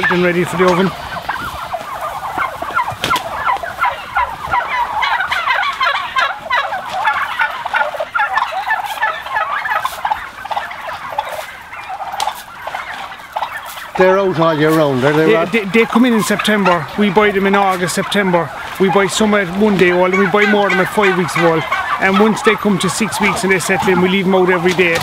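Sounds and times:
turkeys calling: 0.0s - 25.0s.

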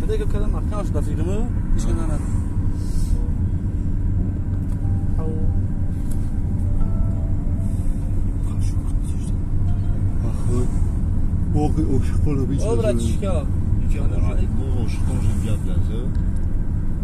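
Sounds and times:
car driving rumble from inside: 0.0s - 17.0s.

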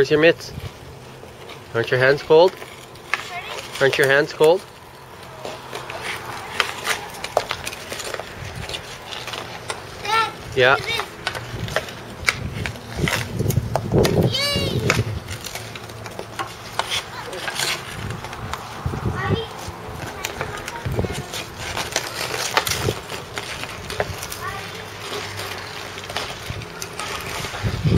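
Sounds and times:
skate blades scraping ice: 0.0s - 27.9s
hockey sticks clacking on puck: 1.2s - 18.8s, 19.4s - 27.9s
child's voice: 3.2s - 3.8s, 10.0s - 11.1s, 14.1s - 15.1s, 17.0s - 17.7s, 19.0s - 22.4s, 24.3s - 25.8s, 26.7s - 27.9s.

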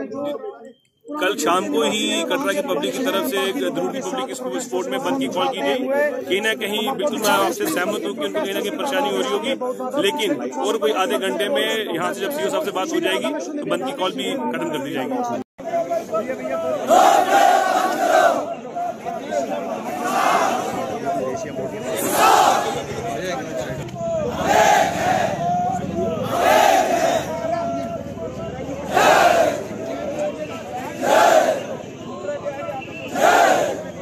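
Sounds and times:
crowd shouting a slogan: 15.6s - 34.0s.

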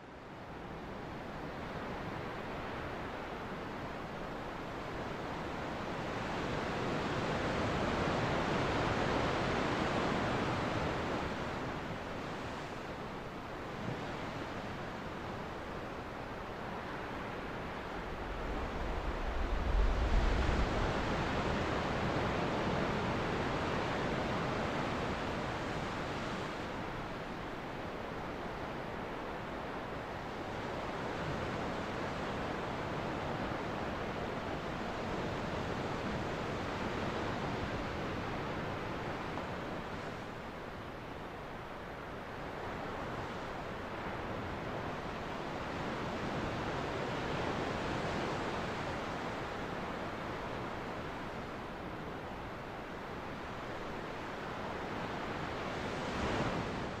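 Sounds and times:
waves washing onto beach: 0.4s - 57.0s.

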